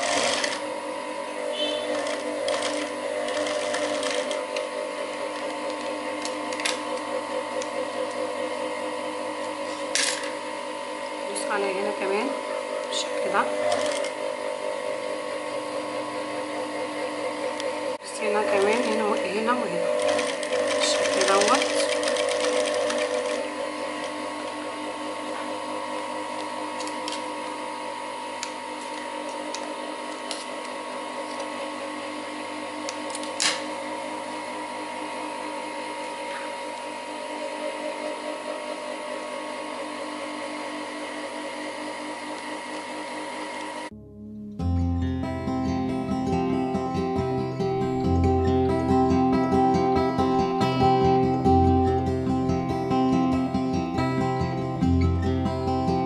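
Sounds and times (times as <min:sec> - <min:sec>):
sewing machine stitching: 0:00.0 - 0:00.7, 0:01.5 - 0:04.7, 0:12.8 - 0:14.2, 0:18.5 - 0:24.2
sewing machine running: 0:00.0 - 0:27.7
motor humming: 0:00.0 - 0:44.0.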